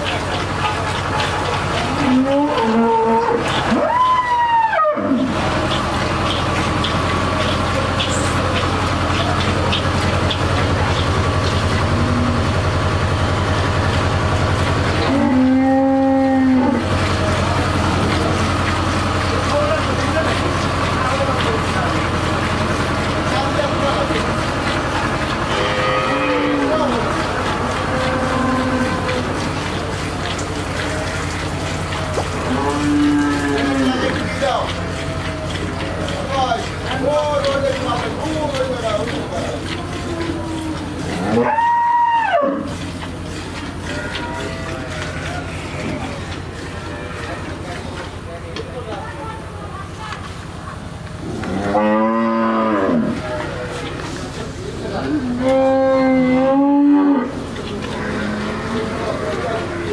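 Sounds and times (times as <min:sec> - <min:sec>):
cattle mooing: 0:01.9 - 0:03.8, 0:15.0 - 0:16.9, 0:25.4 - 0:29.4, 0:32.2 - 0:34.3, 0:40.1 - 0:42.7, 0:51.3 - 0:53.9, 0:55.0 - 0:59.9.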